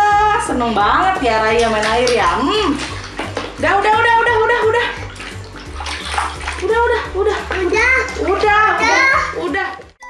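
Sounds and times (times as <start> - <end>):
background music: 0.0 - 10.0
water splashing in a tub: 0.5 - 10.0.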